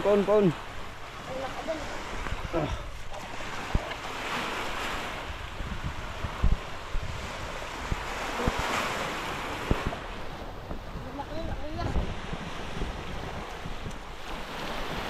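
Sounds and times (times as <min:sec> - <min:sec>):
small waves washing onto beach: 0:00.0 - 0:15.0
wind on microphone: 0:00.0 - 0:15.0.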